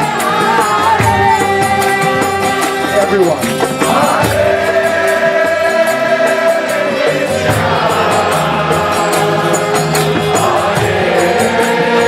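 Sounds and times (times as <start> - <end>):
hand drum: 0.0 - 12.0
harmonium drone: 0.0 - 12.0
group chanting in unison: 3.7 - 12.0.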